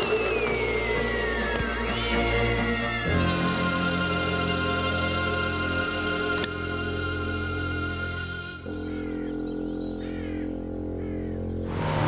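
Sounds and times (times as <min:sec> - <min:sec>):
low musical drone: 0:00.0 - 0:12.0
bird chirping: 0:08.6 - 0:11.7.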